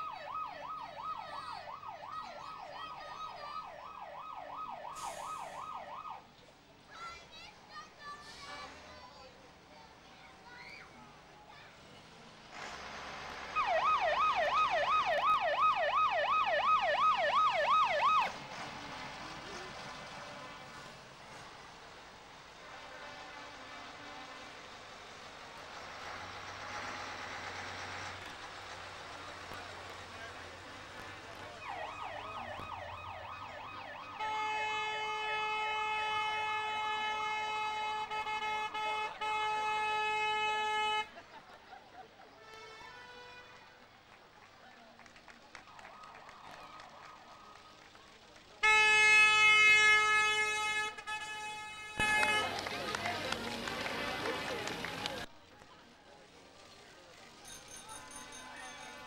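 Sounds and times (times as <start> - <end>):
steady vehicle horn: 34.2 - 41.2, 42.4 - 43.7, 48.6 - 53.0.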